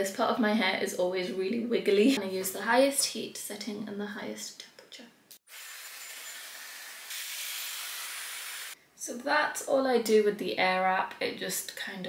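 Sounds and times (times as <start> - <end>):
hair styler blowing air: 5.5 - 8.8.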